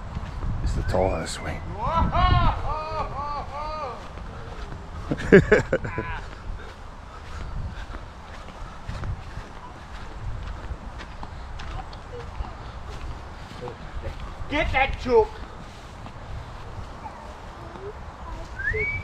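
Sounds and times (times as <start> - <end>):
low wind-like rumble: 0.0 - 19.0.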